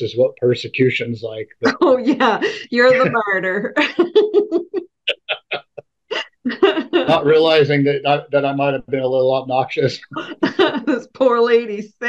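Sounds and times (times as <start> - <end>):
person laughing: 0.0 - 5.8, 6.6 - 10.9.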